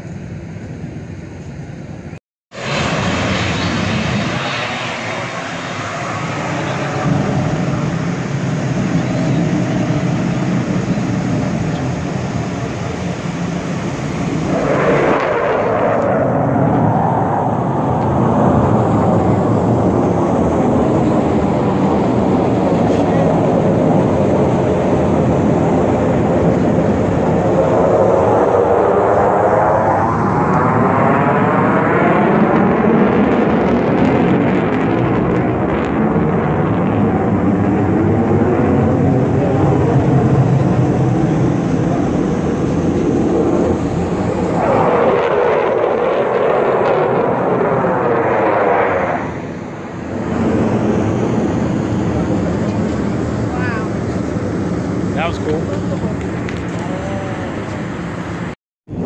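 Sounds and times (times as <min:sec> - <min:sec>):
jet engine rumble: 0:00.0 - 0:59.0
jet passing whoosh: 0:02.5 - 0:59.0.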